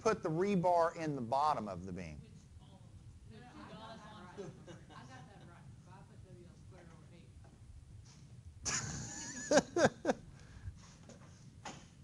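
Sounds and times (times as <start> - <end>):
person laughing: 8.7 - 10.3.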